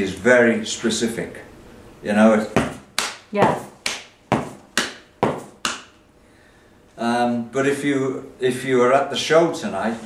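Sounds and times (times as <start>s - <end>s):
hand tapping on hard surface: 2.6s - 5.9s.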